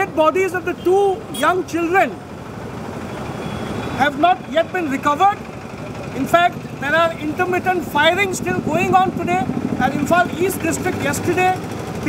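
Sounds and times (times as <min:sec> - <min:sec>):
vehicle engine running: 0:02.1 - 0:12.0.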